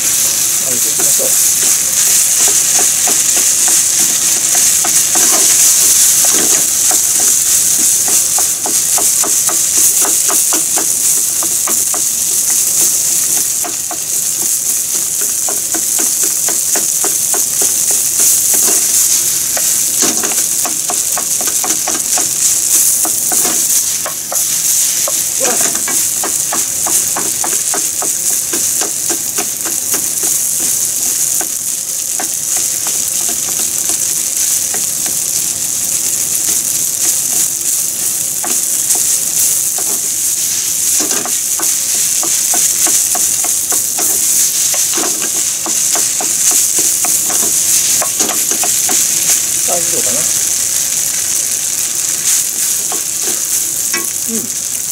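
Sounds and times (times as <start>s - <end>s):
rice sizzling in frying pan: 0.0s - 54.9s.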